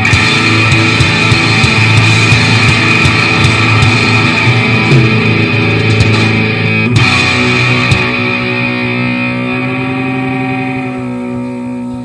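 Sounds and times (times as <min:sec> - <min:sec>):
rock band chord ringing out: 0:00.0 - 0:12.0.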